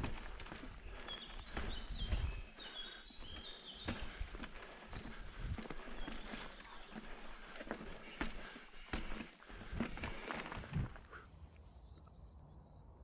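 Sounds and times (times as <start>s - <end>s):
bike rattling: 0.0s - 11.0s.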